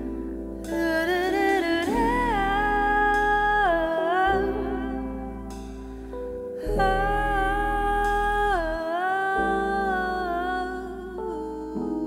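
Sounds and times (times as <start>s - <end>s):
woman singing into a microphone: 0.0s - 12.0s
soft band accompaniment: 5.5s - 6.7s.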